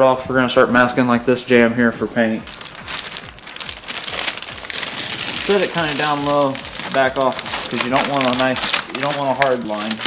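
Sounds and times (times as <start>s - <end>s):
masking tape pulled off roll: 2.6s - 10.0s.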